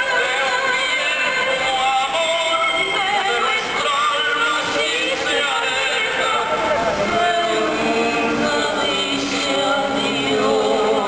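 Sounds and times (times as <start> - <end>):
man and woman singing duet: 0.0 - 11.0
musical accompaniment: 0.0 - 11.0.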